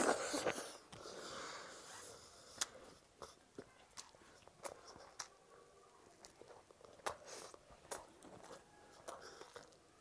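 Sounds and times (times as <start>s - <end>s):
breathy chewing noise: 0.0s - 10.0s.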